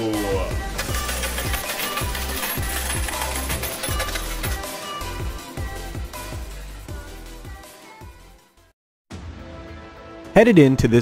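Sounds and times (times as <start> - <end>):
coins clinking: 0.8 - 5.6.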